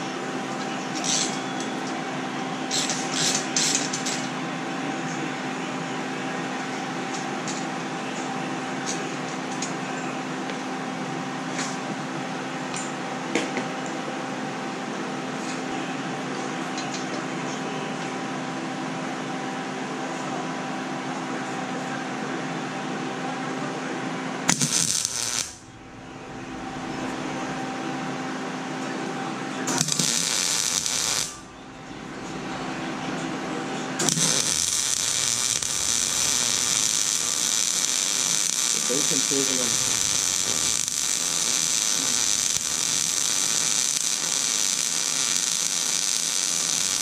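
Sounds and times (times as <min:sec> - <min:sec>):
welding arc crackle: 0:00.0 - 0:02.0, 0:02.7 - 0:04.3, 0:24.5 - 0:27.7, 0:29.6 - 0:32.6, 0:34.0 - 0:47.0
steady hum: 0:00.0 - 0:16.6, 0:17.4 - 0:47.0.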